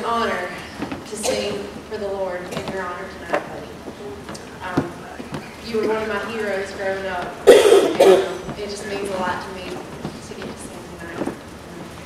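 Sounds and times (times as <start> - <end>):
speech through a microphone: 0.0 - 11.9
loud cough: 7.5 - 8.4.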